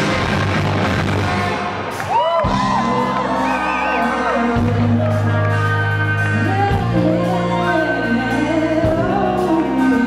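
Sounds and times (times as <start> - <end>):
rock band playing loudly: 0.0 - 10.0
audience whooping and shouting: 1.9 - 4.8.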